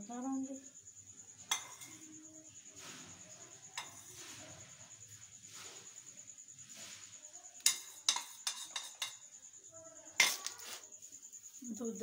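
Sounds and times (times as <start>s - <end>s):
utensils knocking metal pots: 1.5s - 2.2s, 3.8s - 4.2s, 7.6s - 9.2s.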